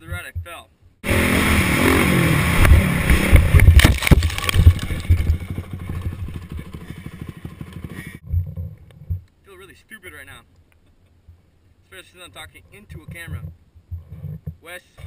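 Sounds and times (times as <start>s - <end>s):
dirt bike engine revving: 1.0s - 8.2s
motorbike crash impacts: 2.6s - 6.2s.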